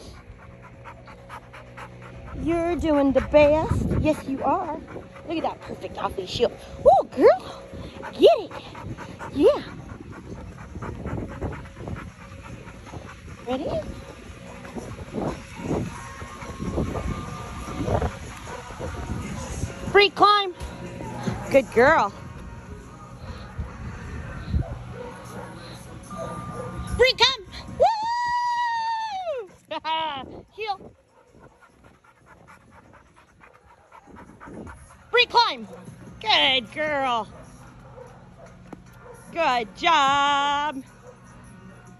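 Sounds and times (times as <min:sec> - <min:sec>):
dog panting: 0:00.0 - 0:22.2, 0:23.0 - 0:27.0, 0:29.4 - 0:41.4.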